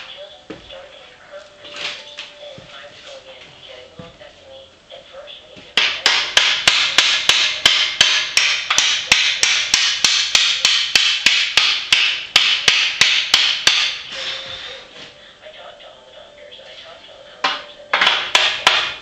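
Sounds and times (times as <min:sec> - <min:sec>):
hammer striking metal tubing: 0:05.8 - 0:14.4, 0:17.4 - 0:19.0.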